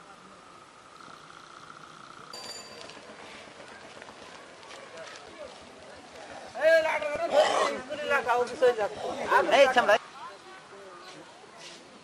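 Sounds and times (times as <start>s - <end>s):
distant voices talking: 0.0s - 12.0s
outdoor background hiss: 0.0s - 12.0s.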